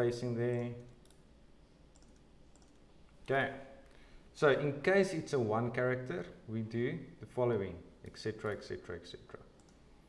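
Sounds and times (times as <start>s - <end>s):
computer keyboard key clicks: 2.0s - 2.8s.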